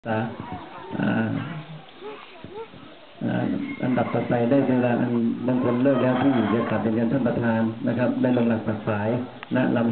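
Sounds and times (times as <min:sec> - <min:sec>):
man speaking into microphone: 0:00.0 - 0:01.8, 0:03.2 - 0:09.9.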